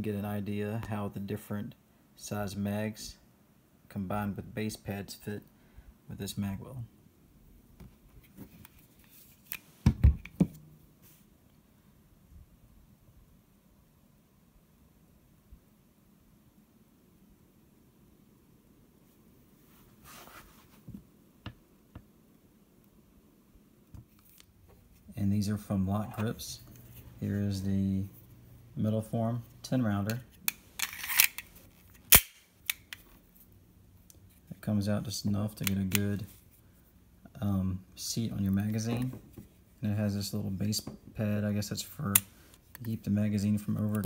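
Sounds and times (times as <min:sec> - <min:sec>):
magazine clicking into pistol: 0:30.5 - 0:31.5, 0:32.1 - 0:33.0
metallic scrape of magazine sliding: 0:30.5 - 0:33.0
pistol clicks: 0:32.1 - 0:33.0.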